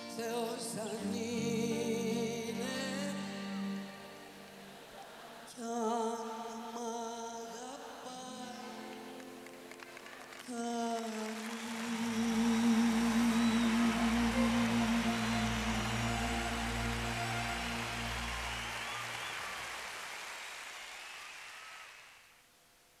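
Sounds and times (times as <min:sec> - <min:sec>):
audience applause: 0:08.9 - 0:22.3
whistles from audience: 0:11.4 - 0:22.3
band holding final chord: 0:11.8 - 0:19.2.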